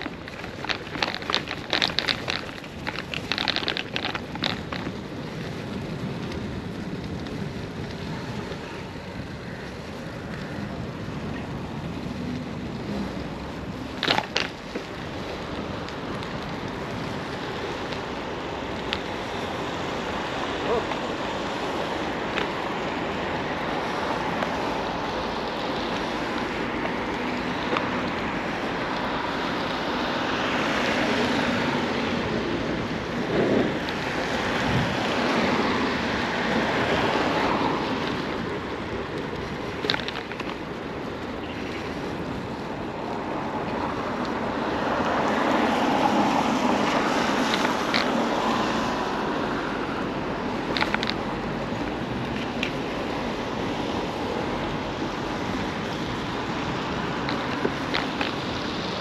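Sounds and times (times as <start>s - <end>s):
bicycle rolling over pavement: 0.0s - 59.0s
traffic: 0.0s - 59.0s
wind buffeting microphone: 0.0s - 59.0s.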